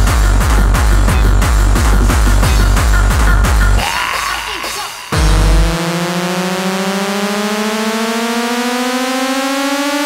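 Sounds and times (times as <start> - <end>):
rising synthesizer tone: 5.1 - 10.0.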